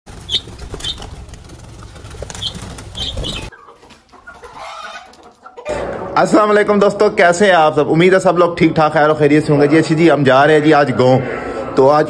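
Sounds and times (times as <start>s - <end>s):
parakeet wings flapping: 0.1s - 3.5s.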